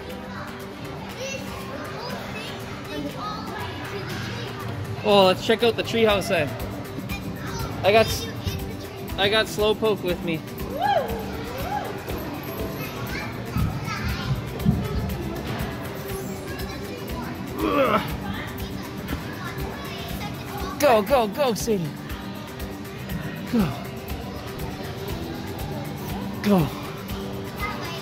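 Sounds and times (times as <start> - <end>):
children calling out: 10.7 - 14.3.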